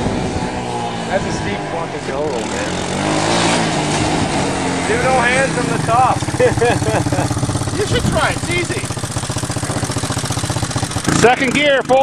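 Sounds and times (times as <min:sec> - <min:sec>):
small engine revving under load: 0:00.0 - 0:12.0.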